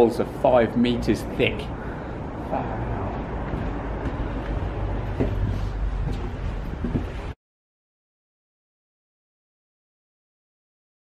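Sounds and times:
wind buffeting microphone: 0:02.1 - 0:07.4.

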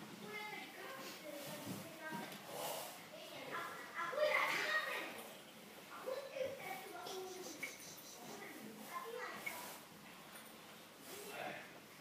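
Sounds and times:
children calling and chattering: 0:00.2 - 0:09.9.

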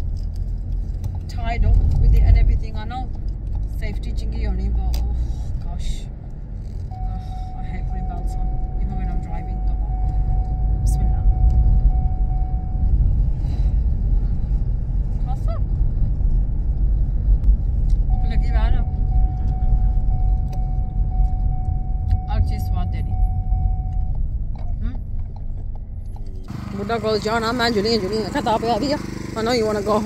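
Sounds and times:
car engine rumble and road noise: 0:00.0 - 0:30.0
steady high tone: 0:06.9 - 0:13.0, 0:18.1 - 0:24.2.

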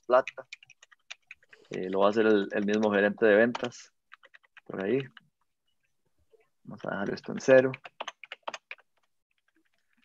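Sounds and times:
computer keyboard typing: 0:00.0 - 0:05.5, 0:06.7 - 0:10.0.

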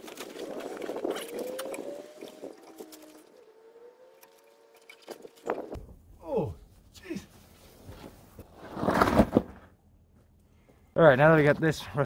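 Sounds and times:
clothing and gravel scuffing: 0:00.0 - 0:02.0.

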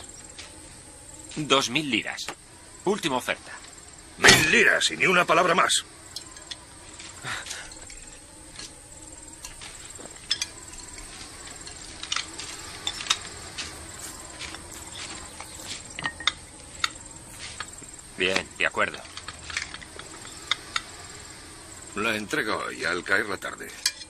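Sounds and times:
high-pitched insect chirping: 0:00.0 - 0:24.0.

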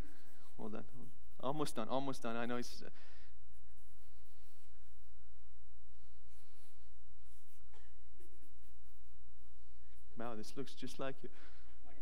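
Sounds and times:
pen scratching on paper: 0:00.0 - 0:02.6, 0:03.5 - 0:05.2, 0:06.3 - 0:10.9
steady low hum: 0:00.0 - 0:12.0.

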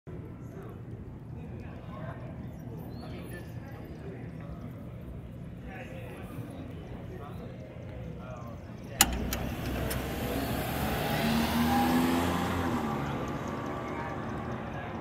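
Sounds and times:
sharp click: 0:09.0 - 0:10.2
car passing by: 0:09.0 - 0:15.0.

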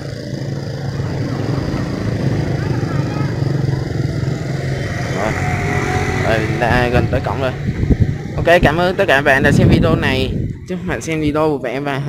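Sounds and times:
motorbike engine running: 0:00.0 - 0:11.8
people's voices: 0:00.9 - 0:12.0.

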